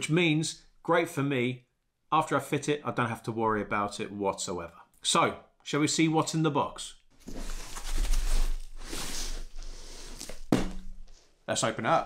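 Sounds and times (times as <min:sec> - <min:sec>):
plastic wrapping rustling: 0:07.2 - 0:11.3
dull bump: 0:10.5 - 0:11.0.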